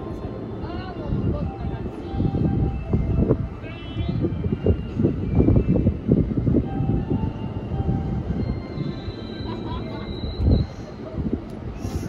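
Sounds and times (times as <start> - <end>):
electric train idling: 4.3 - 12.0.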